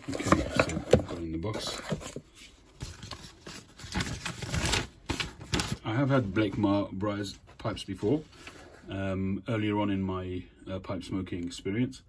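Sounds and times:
packaging rustling and scraping: 0.0 - 5.8.

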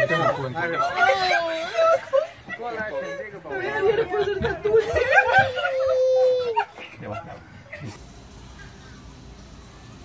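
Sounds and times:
excited voices: 0.0 - 8.0.

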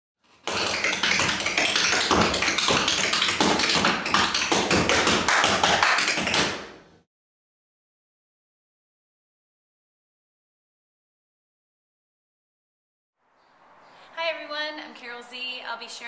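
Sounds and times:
tap-shoe strikes: 0.4 - 6.7.

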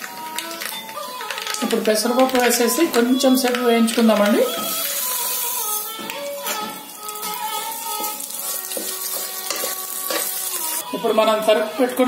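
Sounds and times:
lentils hissing in a hot pot: 4.4 - 5.9, 7.2 - 10.8
steel ladle scraping lentils: 7.2 - 10.8.

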